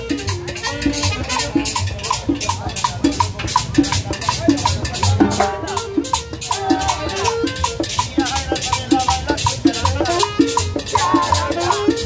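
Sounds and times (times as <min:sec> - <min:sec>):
live band playing latin dance music: 0:00.0 - 0:12.0
upright bass line: 0:00.0 - 0:12.0
pitched drum hits: 0:01.8 - 0:07.0.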